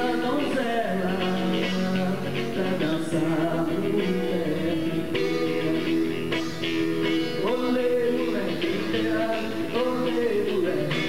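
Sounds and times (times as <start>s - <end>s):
man singing long notes: 0.0s - 6.4s, 7.1s - 11.0s
acoustic guitar strumming: 0.0s - 11.0s.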